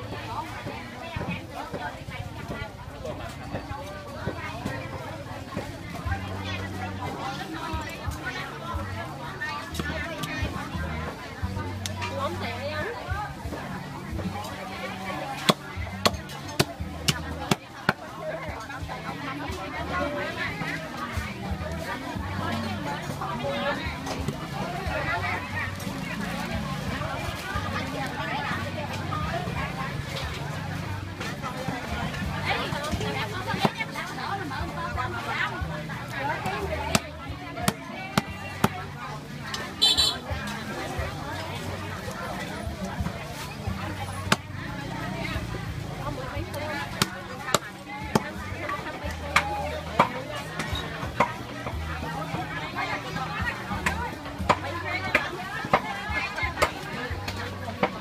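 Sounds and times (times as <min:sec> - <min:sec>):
market chatter: 0:00.0 - 0:58.0
cleaver chopping meat and bone: 0:15.3 - 0:18.0, 0:33.6 - 0:33.8, 0:36.4 - 0:38.8, 0:44.3 - 0:44.5, 0:46.8 - 0:51.4.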